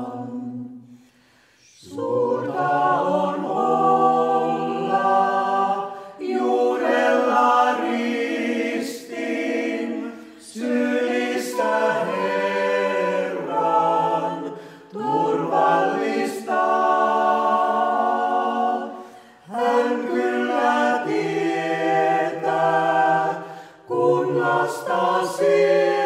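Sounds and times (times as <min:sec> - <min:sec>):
vocal ensemble singing a hymn: 0:00.0 - 0:26.0.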